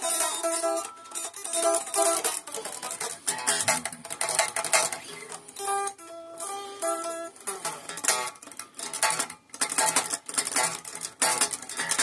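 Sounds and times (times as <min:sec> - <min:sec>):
electric guitar strummed: 0:00.0 - 0:12.0.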